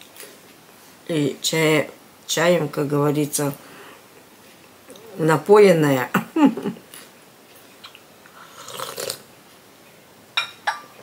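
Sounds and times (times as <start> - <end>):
slurping hot tea: 8.4 - 9.2
cup clinking on saucer: 10.4 - 11.0.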